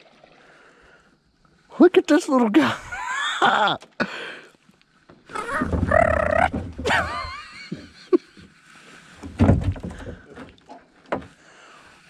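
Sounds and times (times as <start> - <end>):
person's drawn-out exclamation: 5.4 - 6.6.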